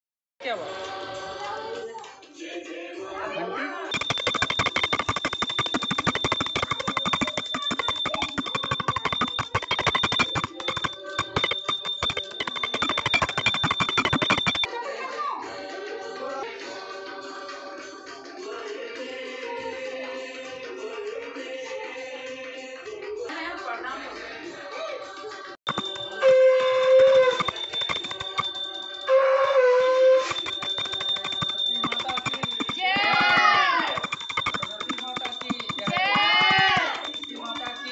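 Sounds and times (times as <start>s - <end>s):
bell ringing rapidly: 3.9s - 14.7s, 25.7s - 37.9s
conch shell blasts: 25.9s - 27.5s.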